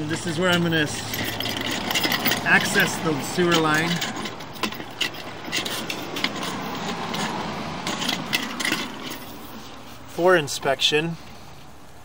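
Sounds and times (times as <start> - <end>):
cable scraping in pipe: 0.9 - 10.2.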